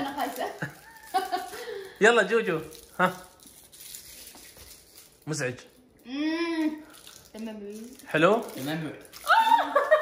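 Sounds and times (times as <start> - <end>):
sweet wrappers crinkling: 0.0 - 10.0.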